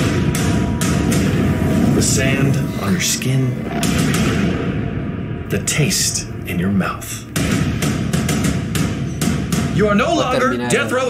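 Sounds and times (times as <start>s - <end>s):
sound effect hit: 0.0s - 9.5s
sharp hits: 0.0s - 10.2s
action trailer music and noise: 0.0s - 10.3s.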